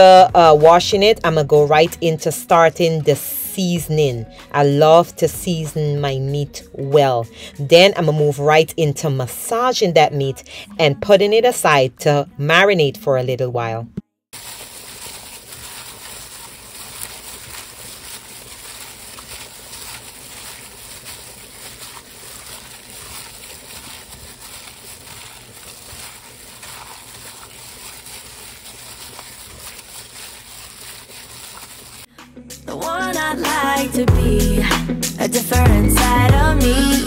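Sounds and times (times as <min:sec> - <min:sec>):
plastic crinkling: 0:14.4 - 0:32.1
wet squishing: 0:14.4 - 0:32.1.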